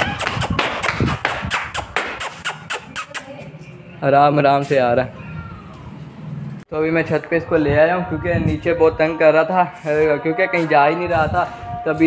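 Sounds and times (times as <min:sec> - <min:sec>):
running footsteps on concrete: 0:00.0 - 0:02.4.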